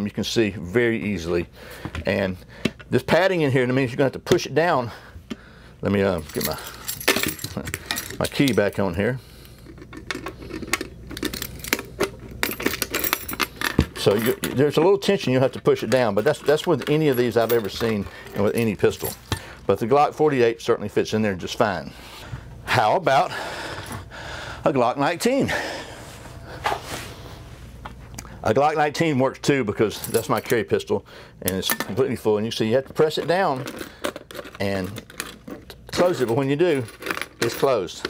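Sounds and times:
metal keys jangling: 6.2s - 9.0s, 9.8s - 14.7s, 15.8s - 19.4s, 29.9s - 30.6s, 33.1s - 38.0s.

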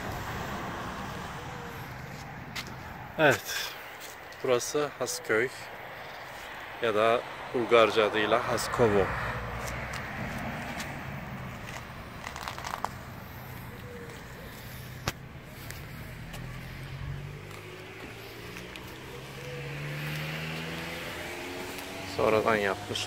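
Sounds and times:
low engine hum: 0.0s - 3.2s, 8.2s - 23.0s
cars driving past: 0.0s - 23.0s.

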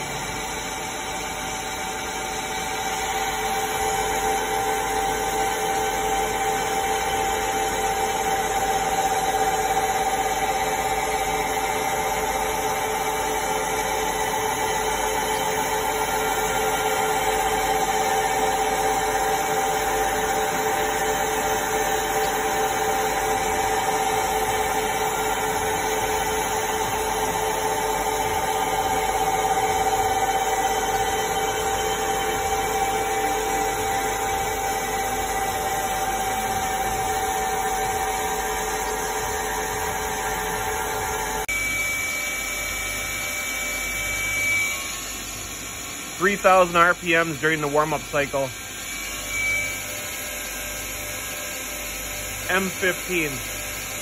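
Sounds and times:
machine spindle whine: 0.0s - 54.0s.

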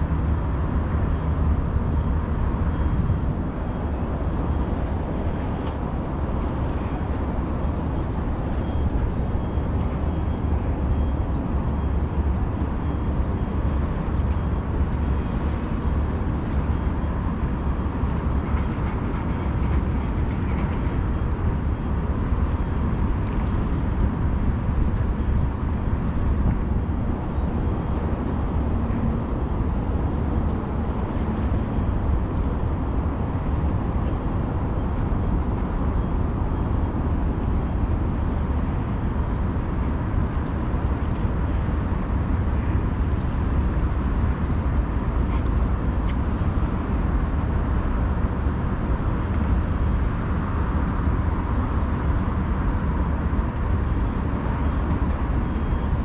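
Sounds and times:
low outdoor rumble: 0.0s - 56.0s.

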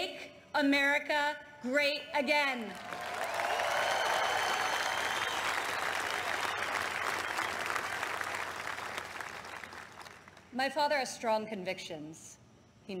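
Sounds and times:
large audience applauding: 2.6s - 10.5s.

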